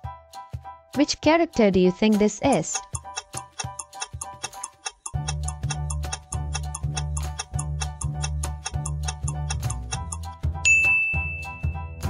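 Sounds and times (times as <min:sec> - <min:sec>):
upbeat background music: 0:00.0 - 0:12.0
bright ding chime: 0:10.6 - 0:11.9.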